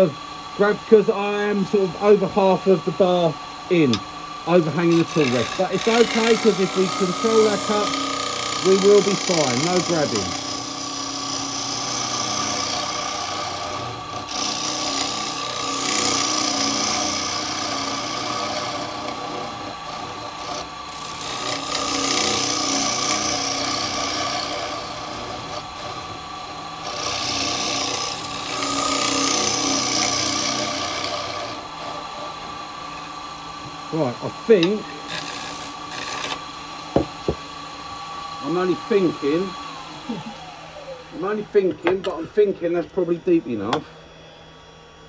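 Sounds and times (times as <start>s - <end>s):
tool cutting wood hiss: 0.0s - 25.9s, 26.8s - 37.6s
lathe humming: 0.0s - 45.0s.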